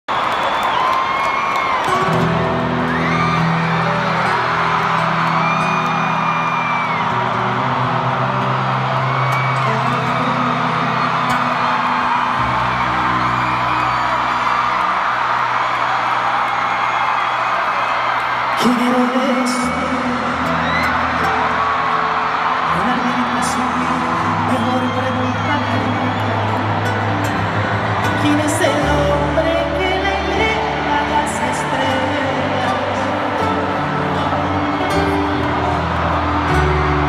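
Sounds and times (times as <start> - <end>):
crowd whooping and cheering: 0.0 - 37.0.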